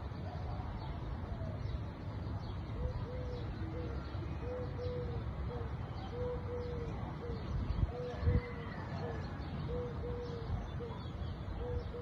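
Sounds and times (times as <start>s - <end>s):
dove cooing: 0.0s - 1.6s, 2.7s - 12.0s.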